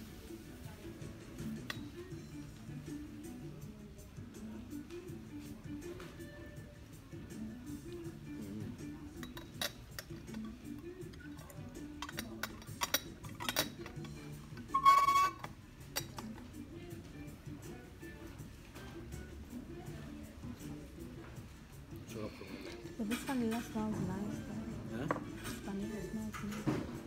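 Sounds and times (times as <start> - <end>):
background music: 0.0 - 27.0
china cups and cutlery clinking: 9.0 - 10.6, 11.3 - 16.4.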